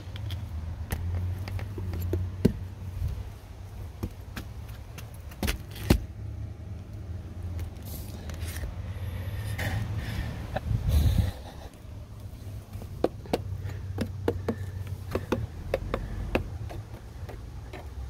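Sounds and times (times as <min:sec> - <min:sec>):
handling clicks and knocks: 0:00.0 - 0:02.8, 0:12.2 - 0:18.0
low steady rumble: 0:00.0 - 0:18.0.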